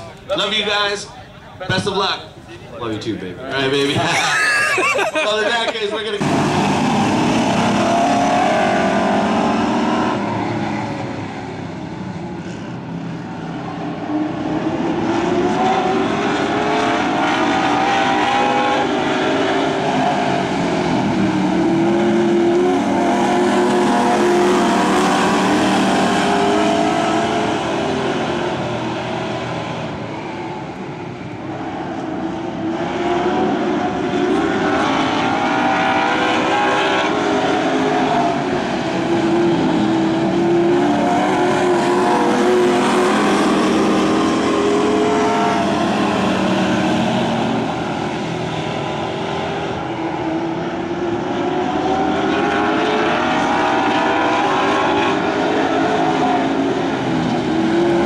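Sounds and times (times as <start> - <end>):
stock car engines revving: 3.4 - 58.0.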